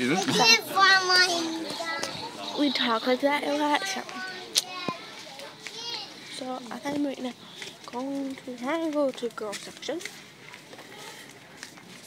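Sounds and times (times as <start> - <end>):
girls giggling and chattering: 0.0 - 9.1.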